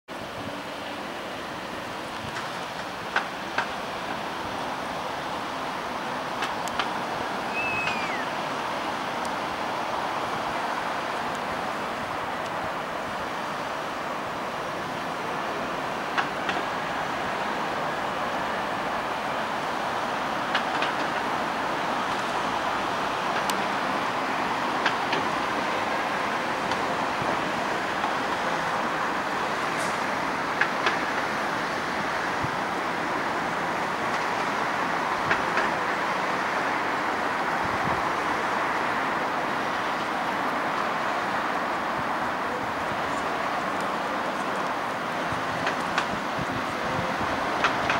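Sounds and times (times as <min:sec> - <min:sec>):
city traffic noise: 0:00.1 - 0:47.9.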